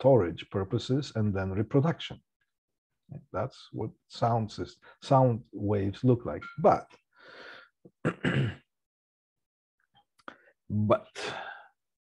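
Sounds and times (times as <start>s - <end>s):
man inhaling: 7.1s - 7.8s.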